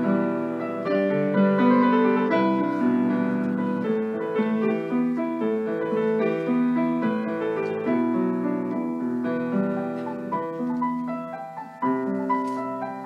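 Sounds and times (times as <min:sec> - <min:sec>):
piano music: 0:00.0 - 0:13.0.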